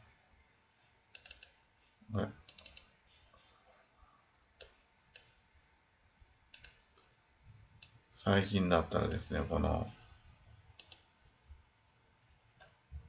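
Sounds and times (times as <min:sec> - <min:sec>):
computer mouse clicks: 0:01.1 - 0:01.6, 0:02.4 - 0:02.9, 0:04.6 - 0:05.4, 0:06.5 - 0:07.1, 0:10.8 - 0:11.1.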